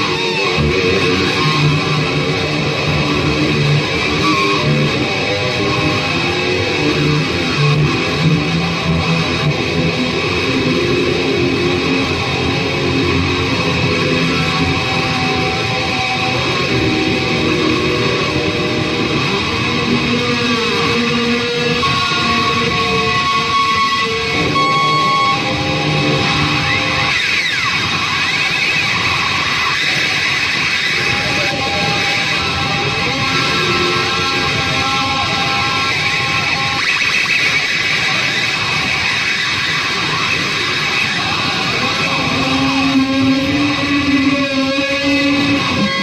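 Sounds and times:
distorted electric guitar shredding: 0.0s - 46.0s.

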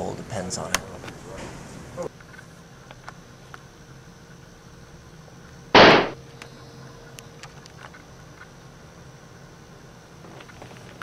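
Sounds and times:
gunshot: 5.8s - 6.2s.

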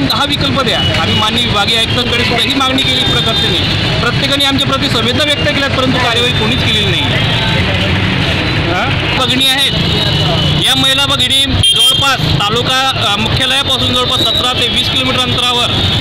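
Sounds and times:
man speaking: 0.0s - 8.0s, 8.6s - 15.8s
traffic rumble: 0.0s - 16.0s.

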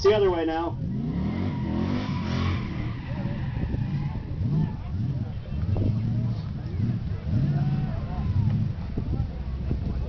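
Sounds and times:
truck engine revving: 0.7s - 10.0s.

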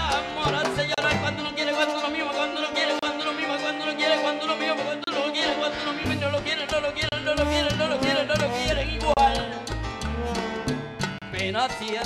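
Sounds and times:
bass line: 0.0s - 2.2s, 5.7s - 12.0s
person singing: 0.0s - 10.5s.

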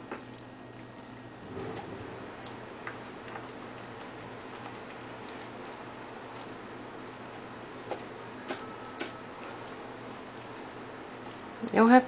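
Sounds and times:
steady low hum: 0.0s - 12.0s
dog chewing food: 0.9s - 11.8s.

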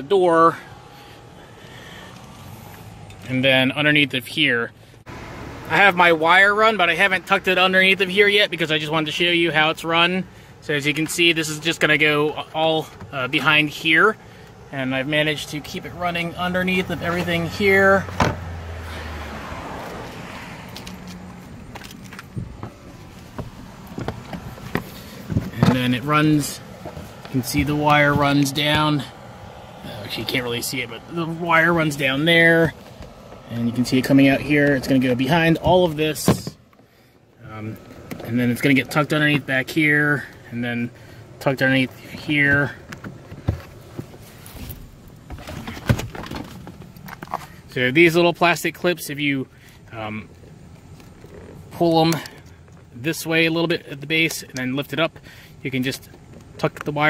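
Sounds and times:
carpet rustling: 19.8s - 36.9s, 41.6s - 47.6s.

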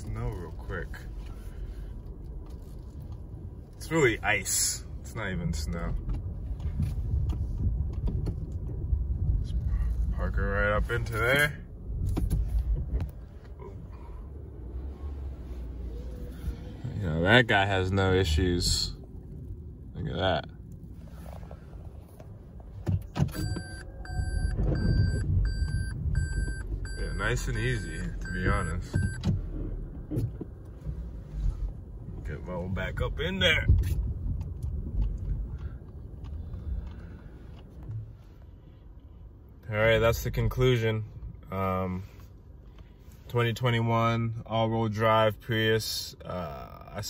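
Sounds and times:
car interior rumble: 0.0s - 47.0s.

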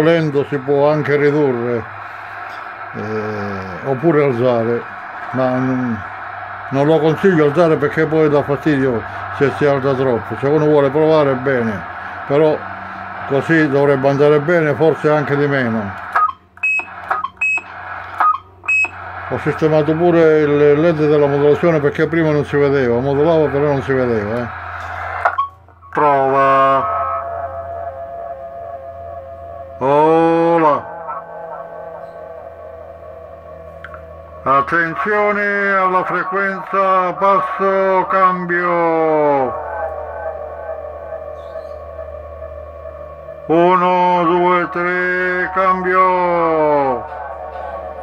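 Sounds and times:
downward-gliding electronic tail: 0.0s - 15.9s, 26.2s - 48.0s
voice over cb radio with echo: 0.0s - 16.2s, 19.0s - 28.8s, 29.8s - 33.2s, 33.9s - 42.0s, 42.9s - 48.0s
low steady hum: 0.0s - 48.0s.

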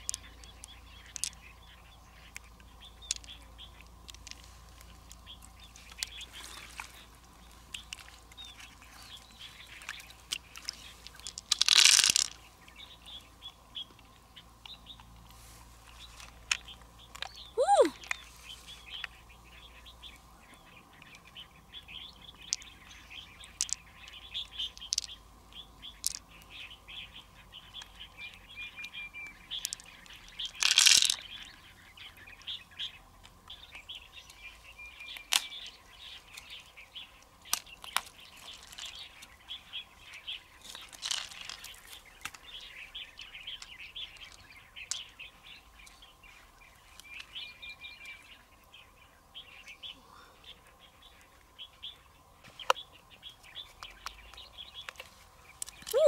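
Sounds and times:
small birds chirping: 0.0s - 56.0s.

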